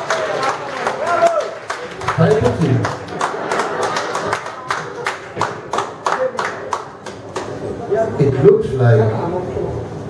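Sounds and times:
rhythmic hand clapping: 0.0 - 7.6.

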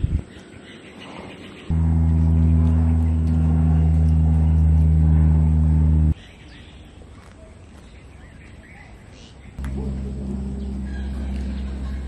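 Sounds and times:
low horn blast: 1.7 - 6.2, 9.6 - 12.0.

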